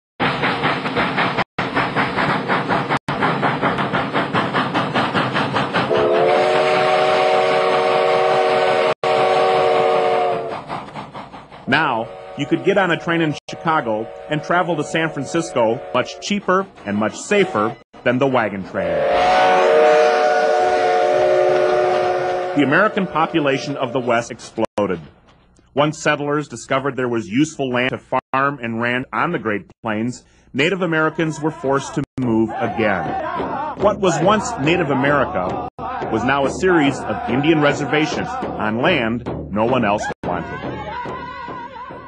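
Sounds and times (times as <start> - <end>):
running train hiss: 0.2 - 16.8
steam locomotive chuffing: 0.2 - 24.9, 30.2 - 42.0
steam whistle chord: 5.9 - 10.6, 11.9 - 16.3, 18.9 - 24.0.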